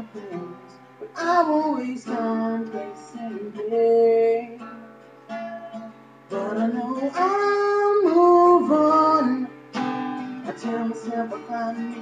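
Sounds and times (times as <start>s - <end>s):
man singing: 0.0s - 4.7s, 6.3s - 9.6s, 10.4s - 12.0s
strummed acoustic guitar: 0.0s - 12.0s.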